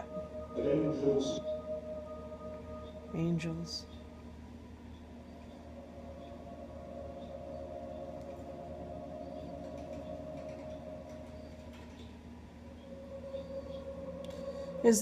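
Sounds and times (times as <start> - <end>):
droning hum from speakers: 0.0 - 15.0.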